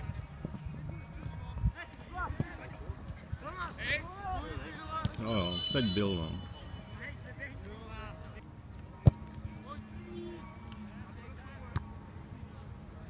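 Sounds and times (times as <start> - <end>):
high steady whistle-like tone: 5.2 - 7.1.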